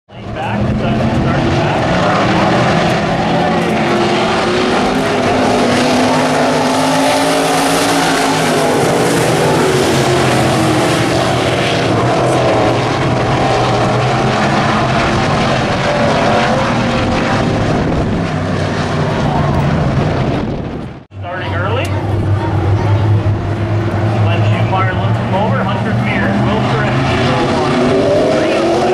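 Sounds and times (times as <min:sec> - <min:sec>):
race car engines droning: 0:00.1 - 0:28.9.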